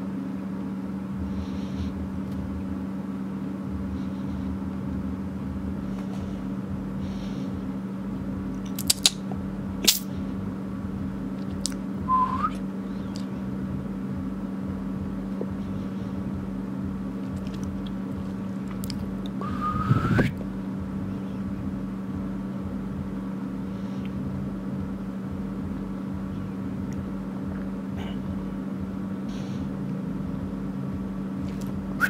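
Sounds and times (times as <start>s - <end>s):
steady low hum: 0.0s - 32.0s
squeaky rising whine: 19.4s - 20.4s.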